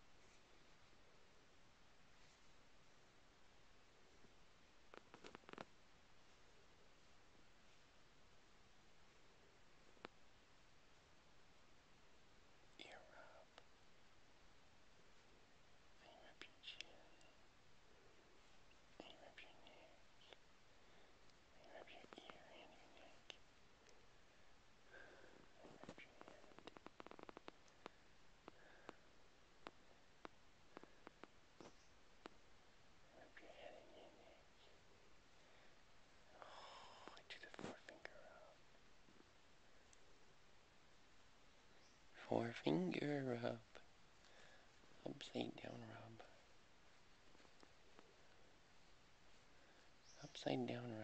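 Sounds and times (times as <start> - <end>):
faint whispering: 0.0 - 8.0, 9.1 - 10.2, 12.1 - 14.0, 14.8 - 40.4, 41.6 - 51.0.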